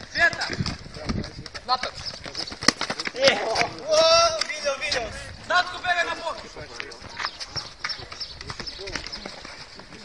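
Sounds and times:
footsteps running on asphalt: 0:00.0 - 0:10.0
young man shouting: 0:03.3 - 0:04.9.

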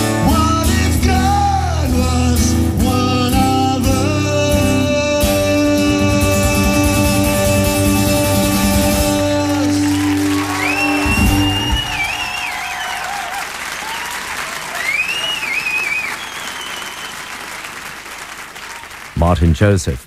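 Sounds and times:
guitar chord ringing: 0:05.5 - 0:12.0
audience applauding: 0:06.8 - 0:19.8
wavering whistles: 0:09.6 - 0:17.4.

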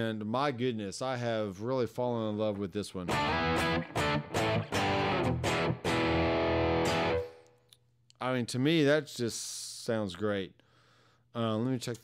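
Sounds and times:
overdriven electric guitar chords: 0:03.1 - 0:07.5.

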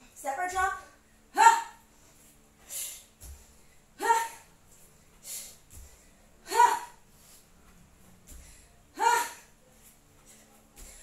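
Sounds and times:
woman grunting with effort: 0:06.4 - 0:07.0.

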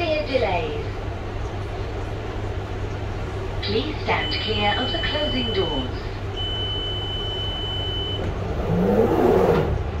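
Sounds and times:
train running noise: 0:00.0 - 0:10.0
train traction motor whine: 0:04.2 - 0:10.0
door-closing warning beep: 0:06.4 - 0:08.4.

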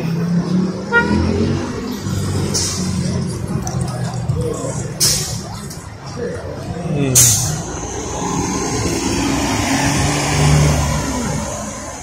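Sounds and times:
bus passing and pulling away: 0:00.0 - 0:12.0.

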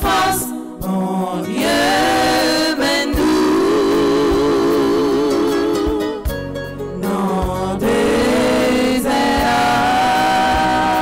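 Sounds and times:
women singing a hymn: 0:00.0 - 0:06.3, 0:07.0 - 0:11.0.

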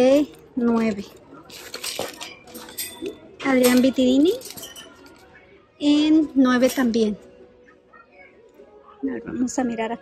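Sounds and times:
metallic clinks against wire: 0:01.5 - 0:05.3.

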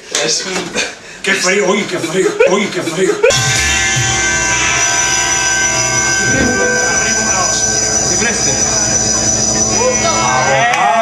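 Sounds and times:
loud synthesizer drone: 0:03.4 - 0:10.0.

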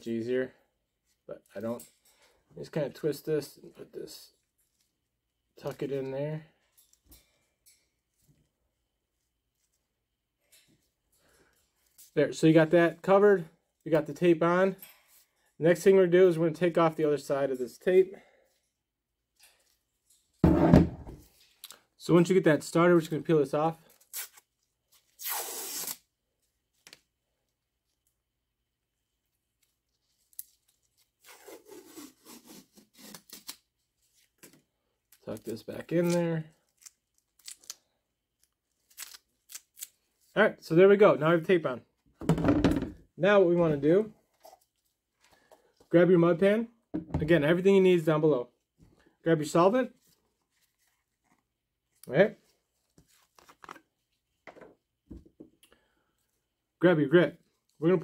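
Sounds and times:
tape backing peeling off: 0:24.0 - 0:26.1
brief crackle of tape: 0:25.2 - 0:26.1.

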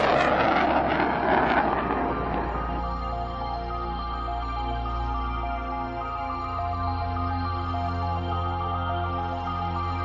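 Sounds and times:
jet engines at takeoff power: 0:00.0 - 0:10.0.

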